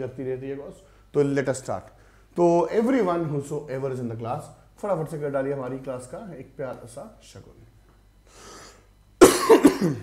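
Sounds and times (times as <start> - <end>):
man coughing: 9.2 - 10.0.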